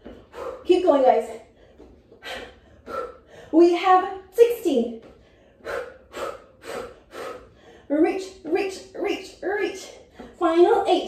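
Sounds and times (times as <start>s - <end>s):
woman breathing hard: 0.0s - 0.7s, 1.4s - 3.6s, 5.1s - 7.9s.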